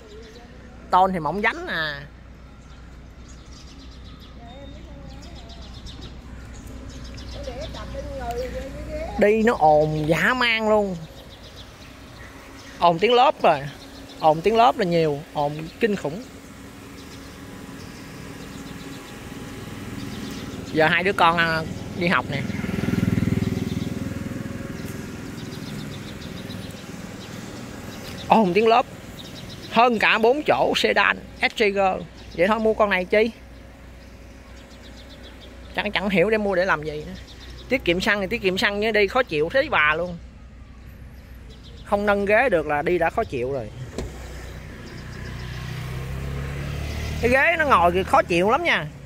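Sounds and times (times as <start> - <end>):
steady low hum: 0.0 - 45.2
small birds chirping: 0.0 - 49.0
vehicle engine pulsing: 0.0 - 49.0.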